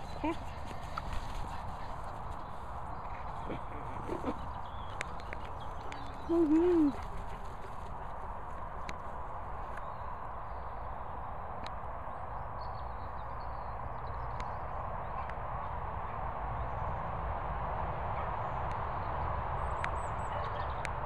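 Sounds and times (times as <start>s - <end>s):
steady outdoor hiss: 0.0s - 21.0s
person laughing: 3.4s - 4.5s, 6.3s - 7.0s
short voice sound: 6.3s - 7.0s.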